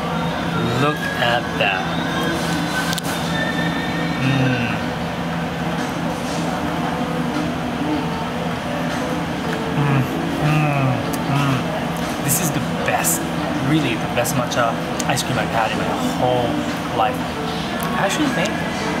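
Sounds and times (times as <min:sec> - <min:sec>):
murmur of voices: 0:00.0 - 0:19.0
steady low hum: 0:00.0 - 0:19.0.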